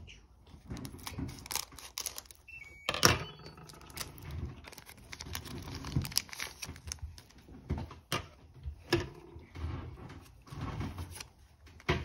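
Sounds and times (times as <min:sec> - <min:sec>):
foil wrapper crinkling: 0:00.7 - 0:02.5, 0:03.7 - 0:07.5
scissors cutting foil: 0:00.8 - 0:02.4, 0:03.7 - 0:07.0.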